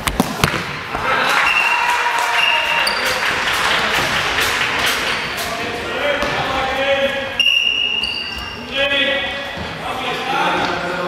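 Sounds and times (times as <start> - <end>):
ball bouncing on hall floor: 0.0 - 1.7, 6.1 - 6.6.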